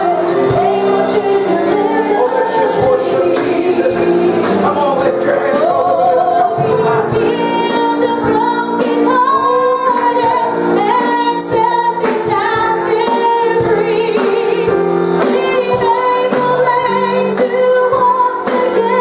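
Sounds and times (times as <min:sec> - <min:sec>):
woman singing with vibrato: 0:00.0 - 0:03.9, 0:05.6 - 0:19.0
band playing held chords: 0:00.0 - 0:19.0.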